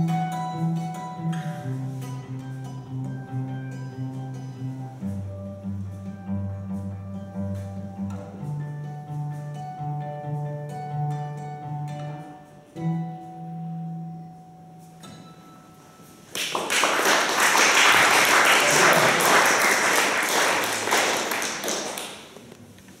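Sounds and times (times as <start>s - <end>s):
acoustic guitar playing: 0.0s - 22.4s
audience applause: 16.3s - 22.4s.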